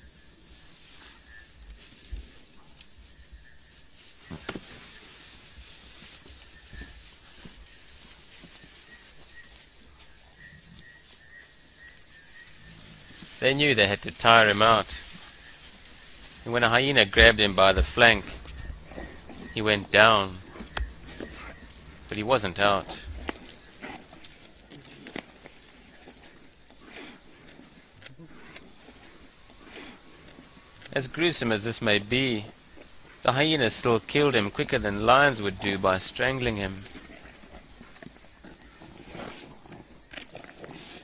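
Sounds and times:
chorus of crickets: 0.0s - 41.0s.

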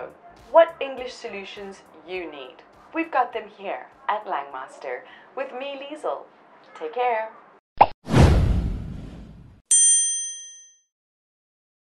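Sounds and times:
bell-like ding: 9.7s - 10.9s.

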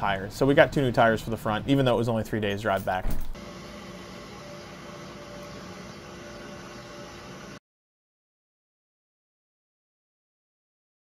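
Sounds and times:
mechanical hum: 3.0s - 7.6s
faint held tones: 3.4s - 7.6s.

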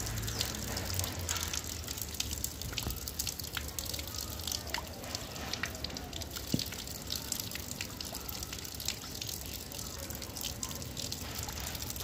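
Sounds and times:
water drips: 0.0s - 12.0s
water splashing onto ground: 0.0s - 12.0s.

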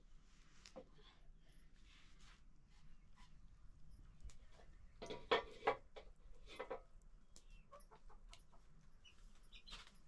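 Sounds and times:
chickens clucking: 7.4s - 8.7s.

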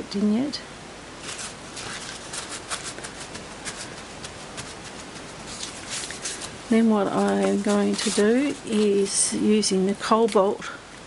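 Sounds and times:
paper towel crinkling: 1.2s - 9.5s.

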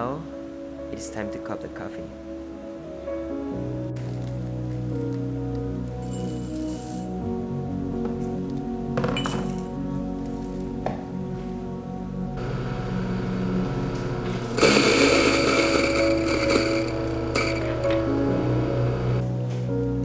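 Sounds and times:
background music: 0.0s - 20.0s
electric coffee grinder running: 12.4s - 19.2s.

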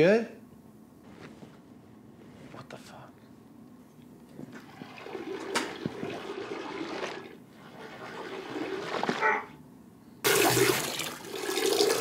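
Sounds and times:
urine splashing into toilet water: 4.6s - 9.2s, 10.3s - 12.0s.

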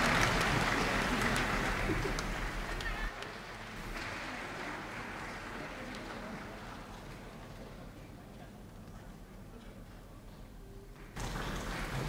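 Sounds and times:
audience applause: 0.0s - 7.7s, 11.0s - 12.0s.

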